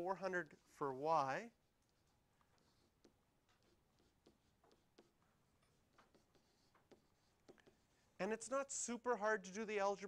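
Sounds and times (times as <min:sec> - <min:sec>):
stylus tapping and scratching screen: 0:00.0 - 0:09.2.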